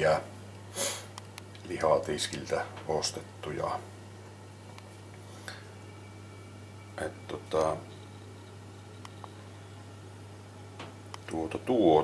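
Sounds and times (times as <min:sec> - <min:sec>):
low hum: 0:01.6 - 0:12.0.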